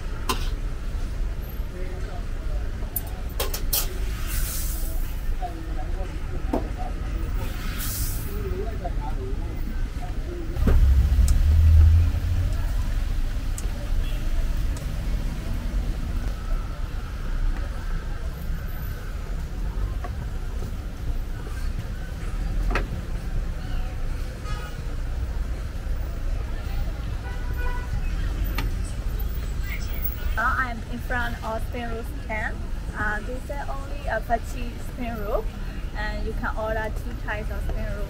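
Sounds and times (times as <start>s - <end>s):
faint voices: 0.0s - 38.0s
low traffic rumble: 0.0s - 38.0s
brief hisses: 3.8s - 5.1s, 7.4s - 8.4s.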